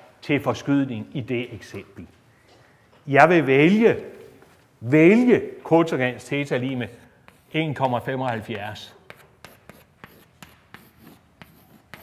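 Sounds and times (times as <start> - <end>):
chalk scratching: 6.3 - 12.0
chalk tapping on blackboard: 7.2 - 12.0.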